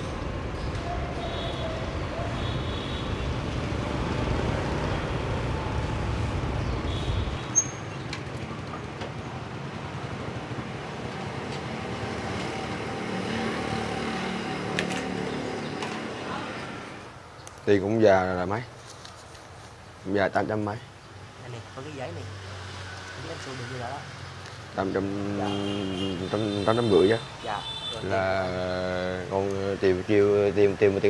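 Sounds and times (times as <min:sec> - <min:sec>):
street traffic noise: 0:00.0 - 0:31.0
wind: 0:00.0 - 0:31.0.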